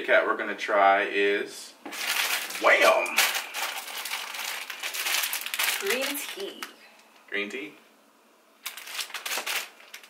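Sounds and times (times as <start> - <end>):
plastic wrapper crinkling: 1.9 - 7.2, 8.6 - 10.0.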